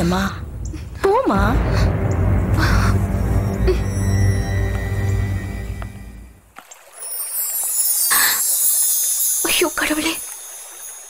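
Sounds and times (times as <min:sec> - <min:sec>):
low film background music: 0:00.0 - 0:07.8.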